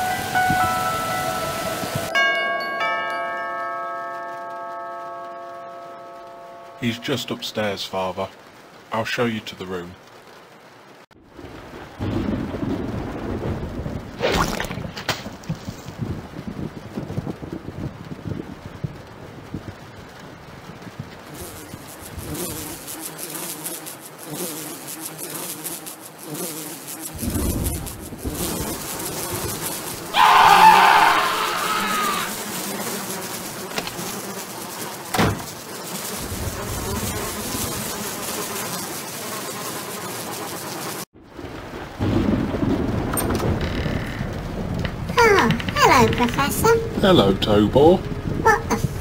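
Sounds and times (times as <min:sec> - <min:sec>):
flies buzzing: 0:00.0 - 0:02.1, 0:20.9 - 0:41.1.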